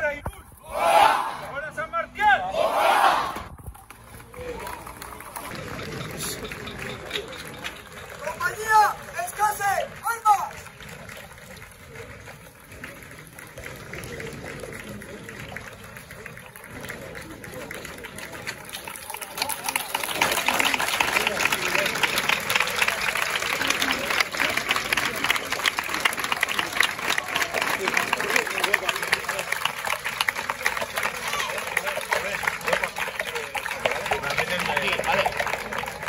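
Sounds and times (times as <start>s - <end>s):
crowd murmuring and chattering: 0.0s - 36.0s.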